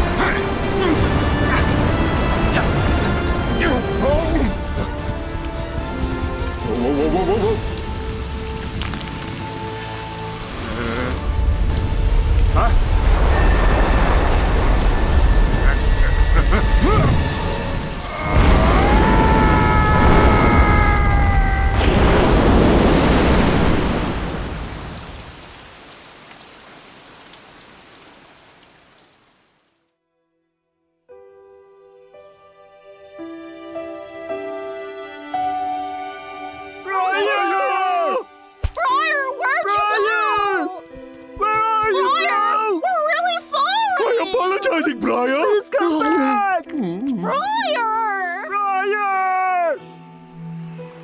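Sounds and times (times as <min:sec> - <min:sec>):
film score music: 0:00.0 - 0:28.9, 0:30.1 - 0:51.0
heavy rain: 0:00.0 - 0:29.8, 0:41.9 - 0:46.6, 0:47.2 - 0:51.0
thunder: 0:10.8 - 0:17.4, 0:18.0 - 0:25.2.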